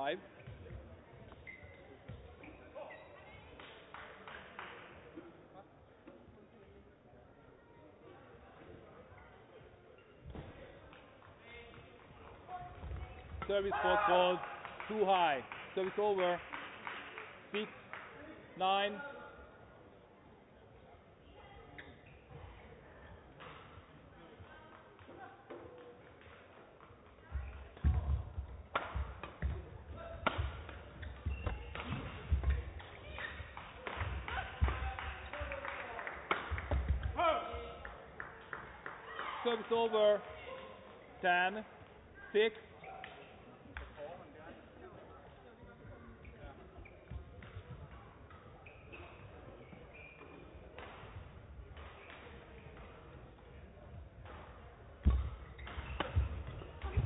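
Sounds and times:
rackets striking shuttlecock: 28.7s - 34.8s, 54.2s - 57.0s.

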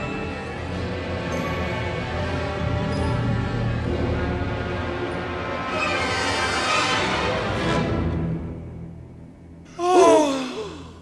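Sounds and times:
orchestral music sweeping downward: 0.0s - 8.8s
breathy vocal exclamation: 9.8s - 11.0s.

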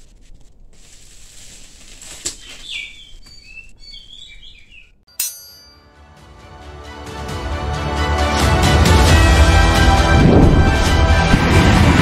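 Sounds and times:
birds chirping: 2.4s - 5.0s.

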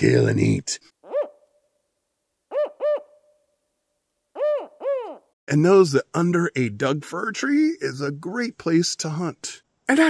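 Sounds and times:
owl hooting: 1.0s - 1.5s, 2.5s - 3.3s, 4.3s - 5.4s.

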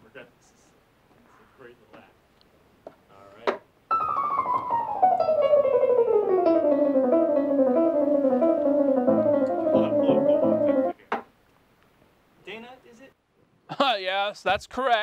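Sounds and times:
piano music: 3.9s - 11.0s.

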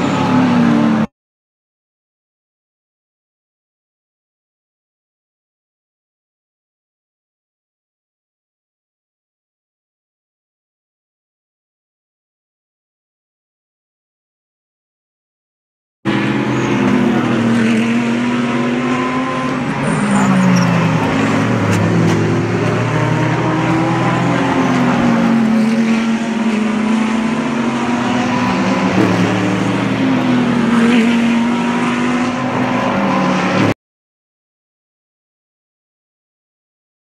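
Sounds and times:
race car engines revving: 0.0s - 1.1s, 16.1s - 33.8s.

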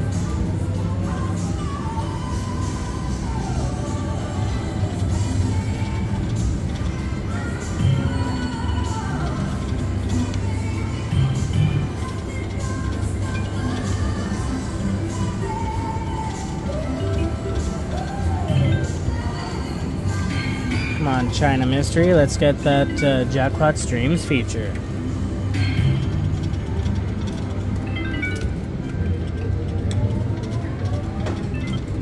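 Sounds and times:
steady low hum: 0.0s - 32.0s
slot machine game music: 4.9s - 32.0s.

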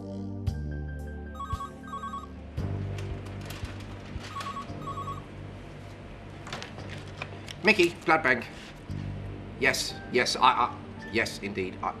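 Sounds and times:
telephone ringing: 1.4s - 2.3s, 4.2s - 5.3s.

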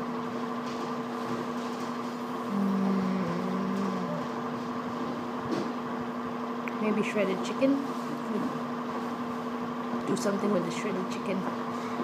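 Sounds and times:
steady electrical hum: 0.0s - 12.0s
person humming: 2.5s - 4.5s.

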